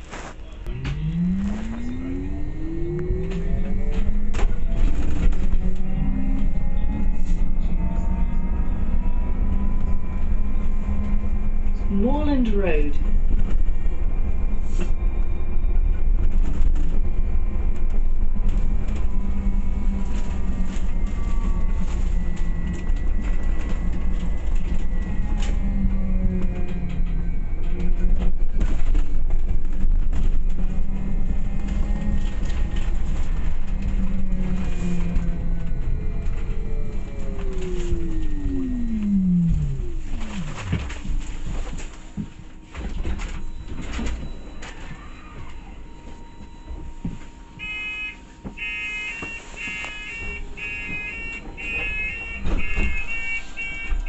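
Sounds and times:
bus engine rumble and whine: 0:00.0 - 0:54.0.

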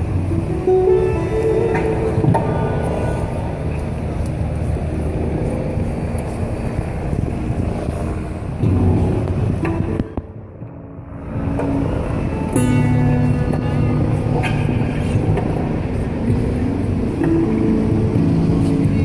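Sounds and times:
music: 0:00.0 - 0:04.8, 0:08.6 - 0:19.0
crowd noise: 0:00.0 - 0:19.0
traffic: 0:00.0 - 0:19.0.

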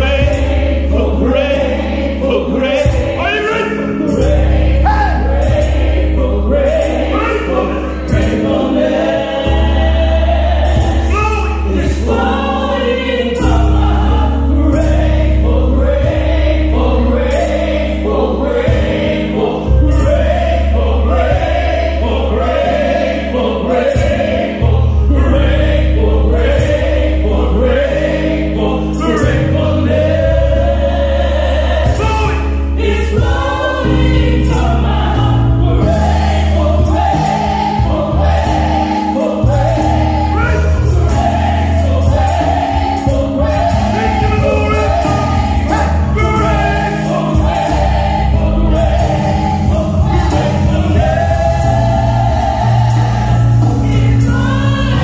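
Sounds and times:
steady drum beat: 0:00.0 - 0:01.8, 0:02.4 - 0:07.2, 0:08.0 - 0:12.6, 0:13.4 - 0:19.4, 0:21.2 - 0:23.1, 0:23.8 - 0:24.9, 0:29.1 - 0:55.0
gospel choir singing: 0:00.0 - 0:55.0
sustained bass: 0:00.0 - 0:55.0.

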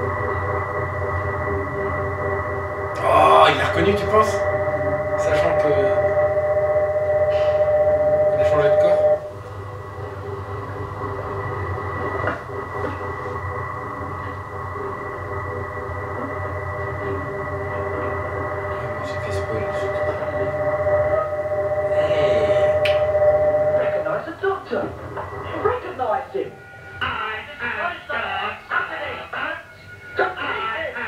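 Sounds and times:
electronic drone: 0:00.0 - 0:31.0
low hum: 0:00.0 - 0:31.0.

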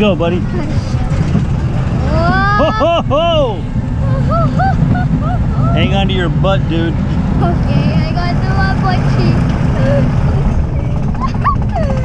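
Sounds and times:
roller coaster chain lift rumble: 0:00.0 - 0:12.0
person laughing or whooping: 0:02.1 - 0:03.3.

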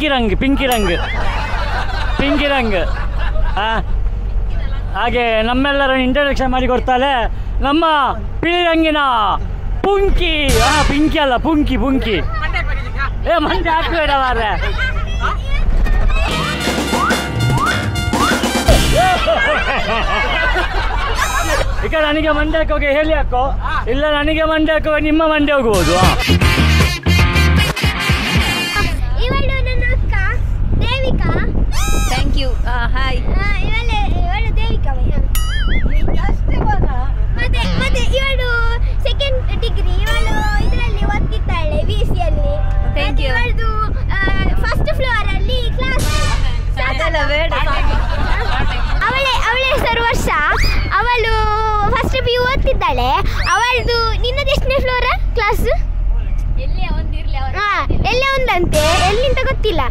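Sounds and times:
van engine rumble: 0:00.0 - 0:27.7, 0:28.3 - 0:59.9
road noise: 0:00.0 - 0:59.9
girls calling out and laughing: 0:00.5 - 0:05.0, 0:12.0 - 0:22.2, 0:28.8 - 0:59.9.

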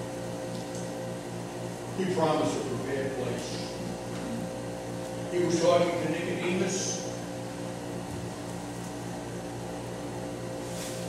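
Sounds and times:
low humming tones: 0:00.0 - 0:11.0.

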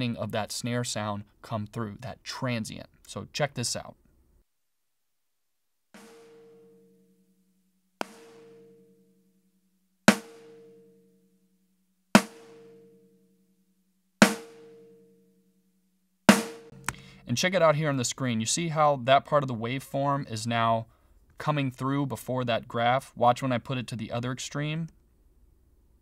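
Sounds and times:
snare drum hits: 0:06.0 - 0:06.7, 0:08.0 - 0:08.6, 0:10.1 - 0:10.6, 0:12.2 - 0:12.7, 0:14.2 - 0:14.8, 0:16.3 - 0:16.9.

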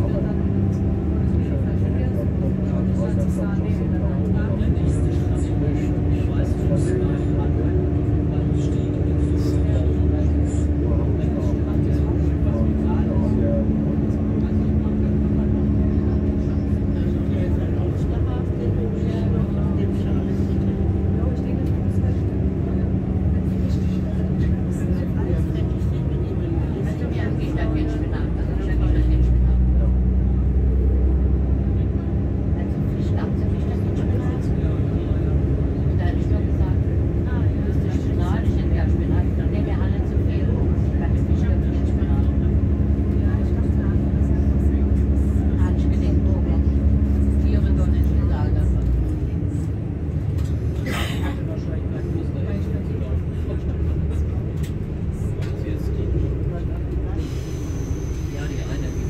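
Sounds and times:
train engine drone: 0:00.0 - 0:59.0
train track rumble: 0:00.0 - 0:59.0.

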